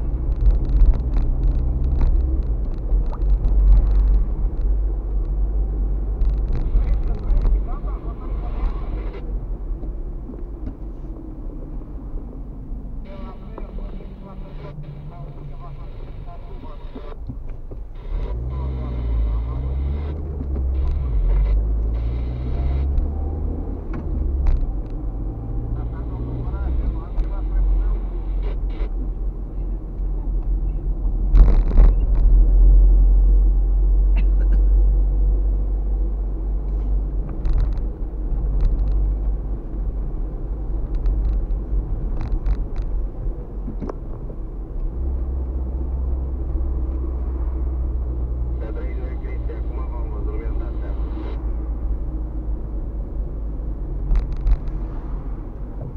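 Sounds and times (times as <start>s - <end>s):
engine and tyre rumble: 0.0s - 55.9s.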